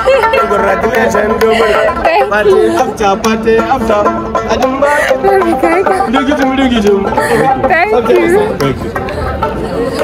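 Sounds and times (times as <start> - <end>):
man singing: 0.0 - 9.1
plucked lute: 0.0 - 10.0.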